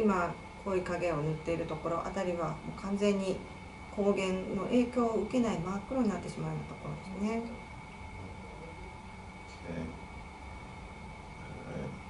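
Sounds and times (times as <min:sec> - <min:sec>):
room hum: 0:00.0 - 0:12.0
soft low murmur: 0:00.0 - 0:12.0.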